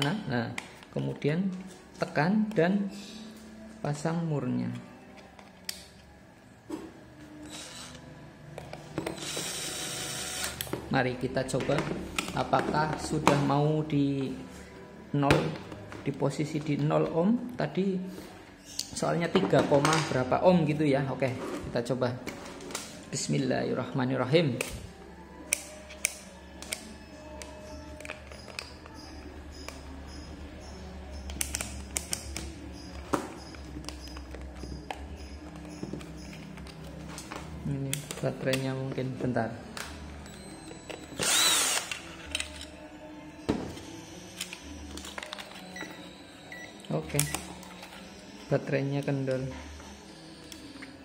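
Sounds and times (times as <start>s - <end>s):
electric screwdriver running: 7.5s - 8.0s, 9.1s - 10.7s, 41.2s - 42.0s.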